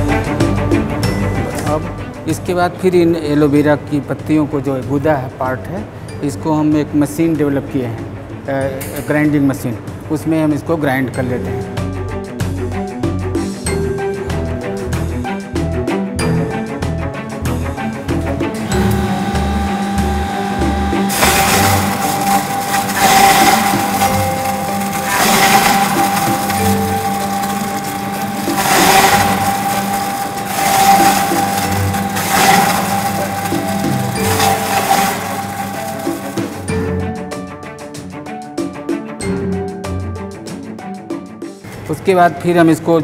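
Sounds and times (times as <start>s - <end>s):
electric grinding machine: 18.2s - 36.7s.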